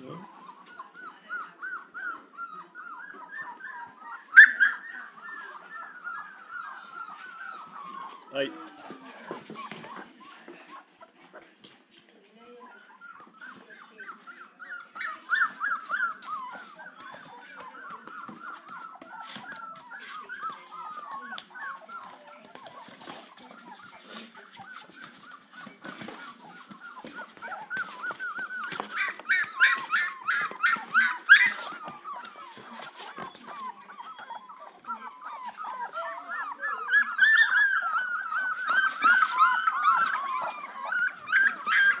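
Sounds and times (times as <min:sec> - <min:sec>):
puppies whimpering and squealing: 0:00.0 - 0:11.6, 0:12.4 - 0:42.0.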